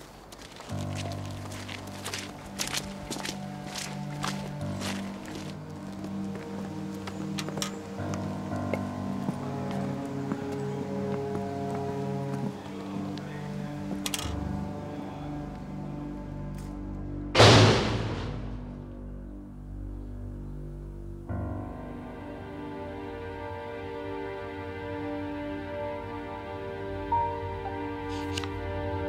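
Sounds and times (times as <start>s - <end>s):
footsteps on dirt path: 0.0s - 14.3s
dark film score: 0.0s - 29.0s
loud heavy thud: 17.4s - 18.8s.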